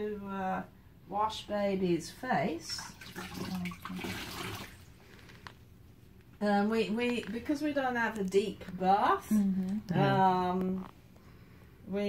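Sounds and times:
water splashing into basin: 2.6 - 5.0.

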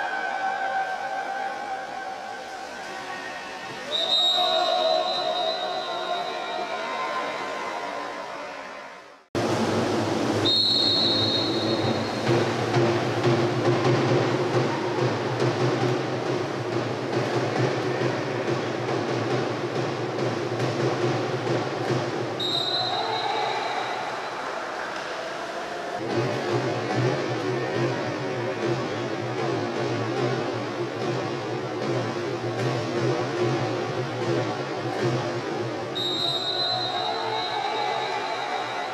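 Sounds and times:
splashing in echoing pool hall: 0.0 - 38.9
referee's whistle blasts: 3.9 - 6.8, 10.4 - 12.3, 22.4 - 24.1, 36.0 - 38.9.

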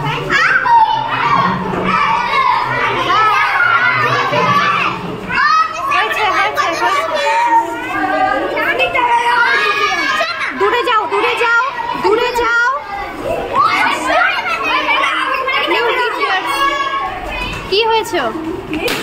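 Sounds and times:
children shouting and chattering: 0.0 - 19.0.

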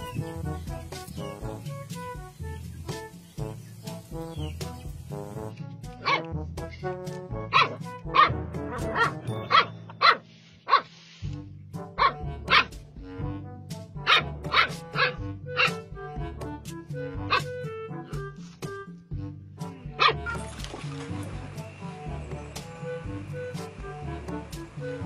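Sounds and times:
background music: 0.0 - 25.0
dog barking: 6.0 - 6.3, 7.5 - 10.9, 12.0 - 12.7, 14.0 - 15.8, 20.0 - 20.4.

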